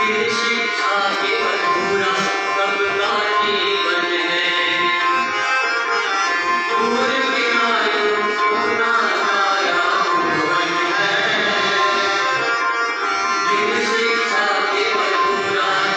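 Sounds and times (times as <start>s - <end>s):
group of voices singing: 0.0s - 5.4s, 6.7s - 12.6s, 13.4s - 15.9s
harmonium chords: 0.0s - 15.9s.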